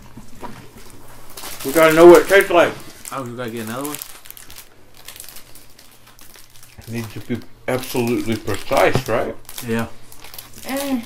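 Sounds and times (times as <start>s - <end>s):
plastic packaging crinkling: 0.3s - 11.0s.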